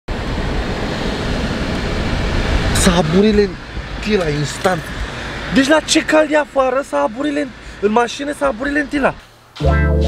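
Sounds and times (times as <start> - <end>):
car cabin road noise: 0.1 - 10.0.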